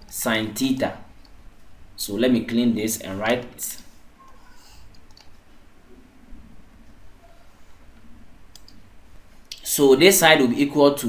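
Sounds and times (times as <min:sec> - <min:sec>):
low steady hum: 0:00.0 - 0:11.0
faint computer clicks: 0:03.4 - 0:05.5, 0:08.5 - 0:08.8.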